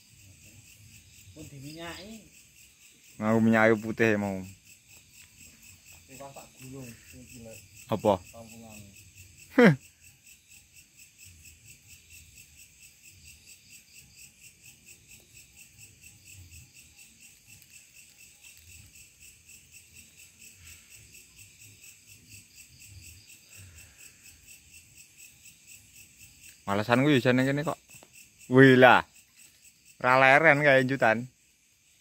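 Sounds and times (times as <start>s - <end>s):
crickets chirping: 0.0s - 32.0s.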